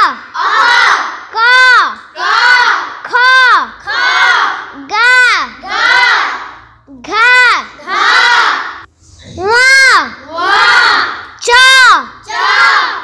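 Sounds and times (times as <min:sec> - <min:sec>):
children's chorus repeating: 0:00.0 - 0:06.7, 0:07.4 - 0:08.9, 0:09.5 - 0:13.0.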